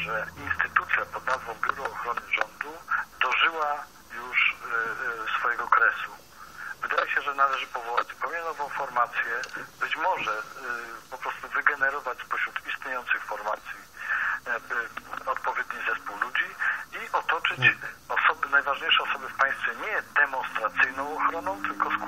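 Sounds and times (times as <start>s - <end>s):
radio-like speech: 0.0s - 22.0s.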